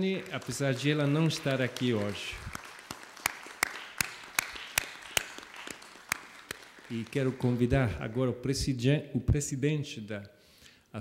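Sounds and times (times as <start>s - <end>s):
person clapping steadily: 0.0s - 8.0s
sparse applause: 0.0s - 8.3s.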